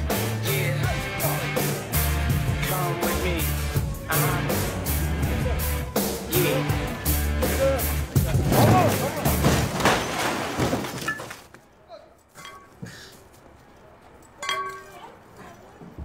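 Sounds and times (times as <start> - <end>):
metal crunching: 8.0 - 12.4
car crashing onto its roof: 8.3 - 11.5
glass breaking: 8.3 - 11.6.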